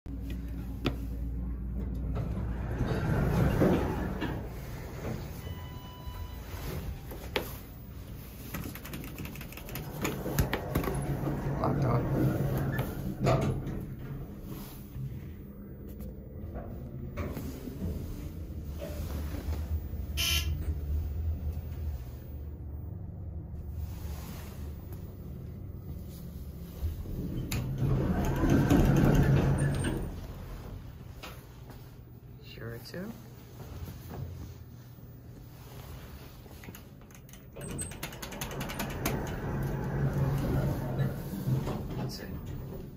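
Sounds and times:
elevator low hum: 0.0s - 42.9s.

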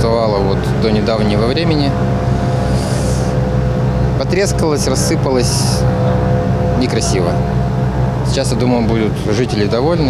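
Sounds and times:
road-works machinery engine drone: 0.0s - 10.0s.

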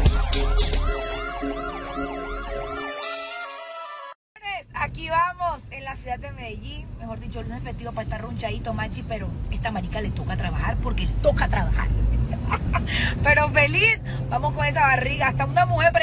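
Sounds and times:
electronic music with rising sweep: 0.0s - 4.2s
wavering siren-like wail: 0.0s - 4.2s.

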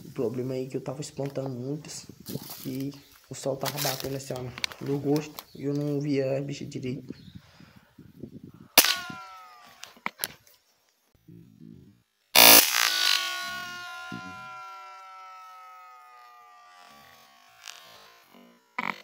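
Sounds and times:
rifle shots: 8.8s - 9.3s, 12.4s - 13.8s
ringing tone sliding down: 12.4s - 18.4s.

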